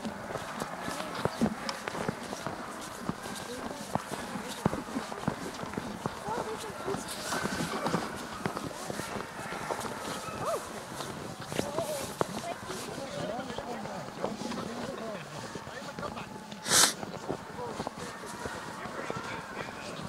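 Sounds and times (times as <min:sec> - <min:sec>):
footsteps crunching on snow: 0:00.0 - 0:20.0.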